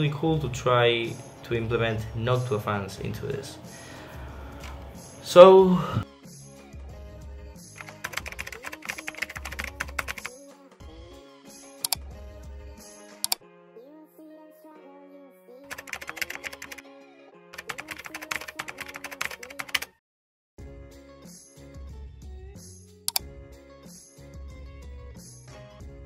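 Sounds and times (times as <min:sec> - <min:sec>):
background music: 0:00.0 - 0:19.9, 0:20.6 - 0:26.0
rapid keyboard typing: 0:07.8 - 0:10.4, 0:15.7 - 0:16.8, 0:17.6 - 0:20.0.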